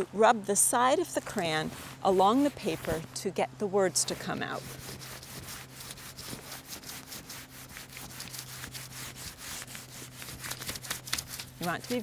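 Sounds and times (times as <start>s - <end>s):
crayon scratching on paper: 1.4s - 3.1s, 4.0s - 12.0s.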